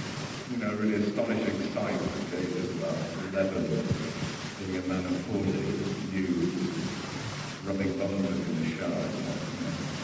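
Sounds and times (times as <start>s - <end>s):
tape hiss: 0.0s - 10.0s
man talking through pa: 0.5s - 4.0s, 4.6s - 6.7s, 7.6s - 9.9s.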